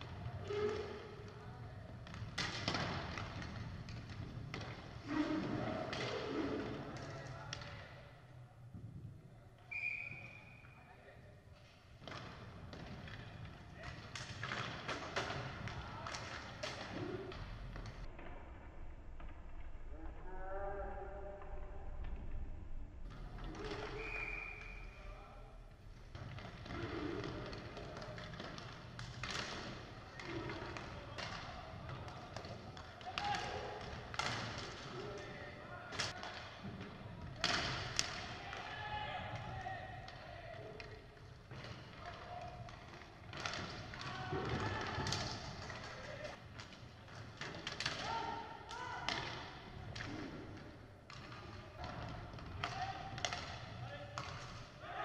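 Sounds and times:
sticks and puck clacking on floor: 0:00.0 - 0:08.0, 0:11.6 - 0:18.4, 0:23.1 - 0:25.1, 0:25.7 - 0:55.0.

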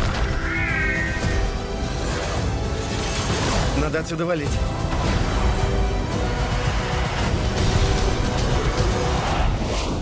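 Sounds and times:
trailer music: 0:00.0 - 0:10.0.

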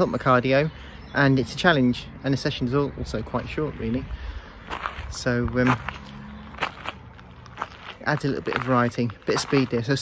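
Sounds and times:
footsteps walking: 0:04.6 - 0:10.0.

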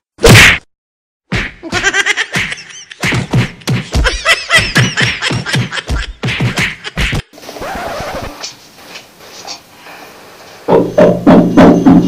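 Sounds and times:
loud whack: 0:00.2 - 0:00.7
rhythmic music with beatbox percussion: 0:02.4 - 0:04.2, 0:04.8 - 0:07.4.

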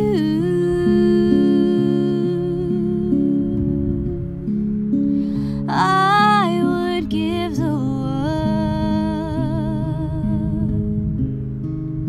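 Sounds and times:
woman singing a long note: 0:00.0 - 0:03.8, 0:05.6 - 0:10.8
acoustic guitar plucking: 0:00.0 - 0:12.0.

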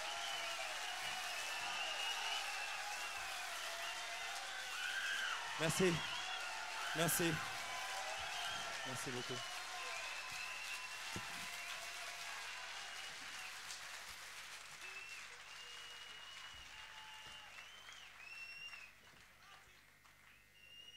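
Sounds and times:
long high whistles: 0:00.0 - 0:11.6, 0:14.8 - 0:18.9
audience applauding: 0:00.0 - 0:20.9.

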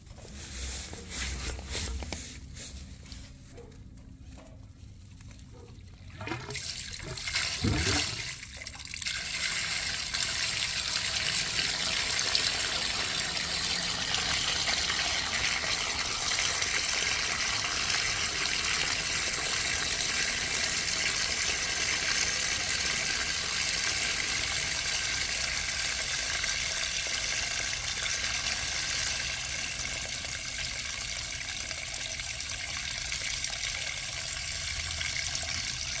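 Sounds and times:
waste water pouring into pipe: 0:06.0 - 0:36.0.

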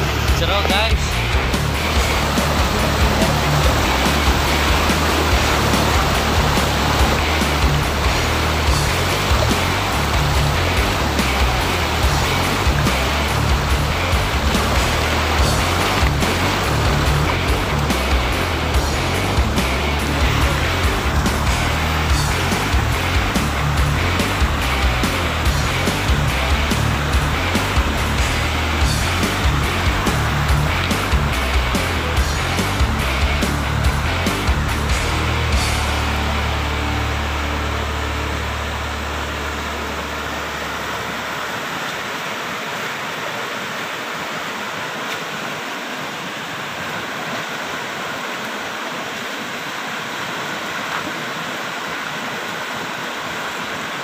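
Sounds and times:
music with beat and heavy bass: 0:00.0 - 0:40.2
fast-flowing river rushing: 0:00.0 - 0:54.0.

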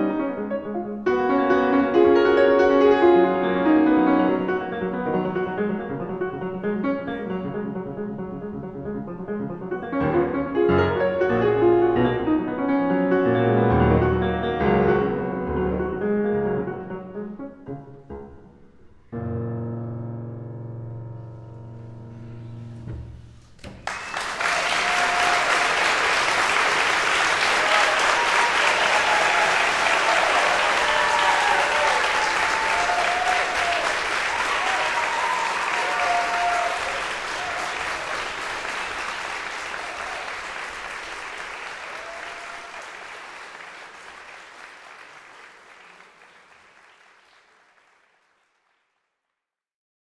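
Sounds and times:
grand piano chord: 0:00.0 - 0:23.6
audience applauding: 0:23.7 - 0:49.2.

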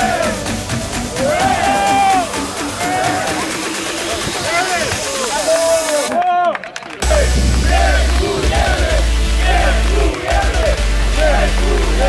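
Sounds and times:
crowd of men shouting: 0:00.0 - 0:00.5, 0:01.1 - 0:12.0.

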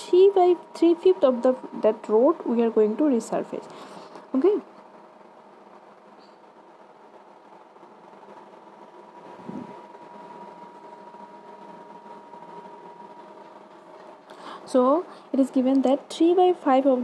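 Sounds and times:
faint background hum: 0:00.0 - 0:17.0.

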